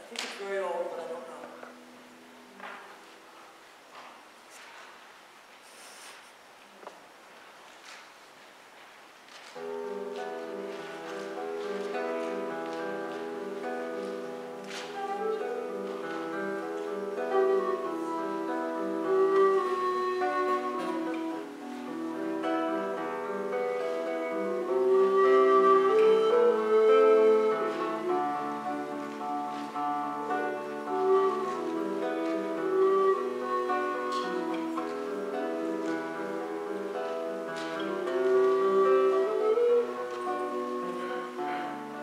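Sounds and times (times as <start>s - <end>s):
plucked acoustic guitar: 9.6s - 42.0s
recorder melody: 9.6s - 42.0s
violin melody: 9.6s - 42.0s.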